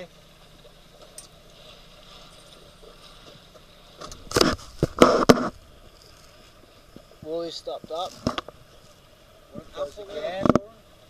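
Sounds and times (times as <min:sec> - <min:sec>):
wind: 0:00.0 - 0:11.0
noise bursts thudding on microphone: 0:03.2 - 0:10.8.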